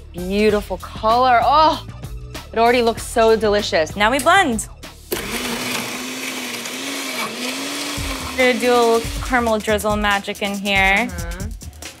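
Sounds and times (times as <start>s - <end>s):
blender blending ice: 5.1s - 10.7s.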